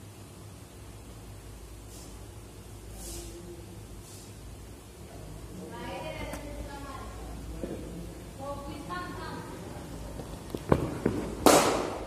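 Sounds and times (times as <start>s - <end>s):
sharp loud slap: 11.4s - 12.0s.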